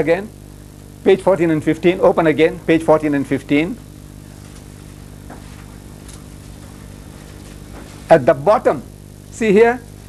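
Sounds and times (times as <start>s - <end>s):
electrical hum: 0.0s - 10.0s
tape hiss: 0.0s - 10.0s.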